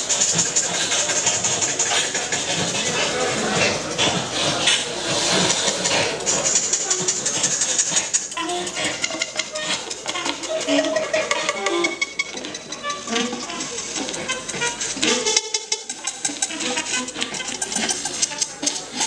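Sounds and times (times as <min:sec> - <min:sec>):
free-improvised saxophone: 0:00.0 - 0:19.0.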